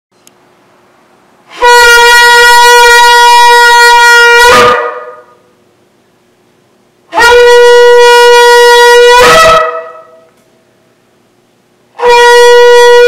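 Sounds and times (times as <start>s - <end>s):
shofar blast: 1.5s - 5.4s, 7.1s - 10.4s, 12.0s - 13.0s.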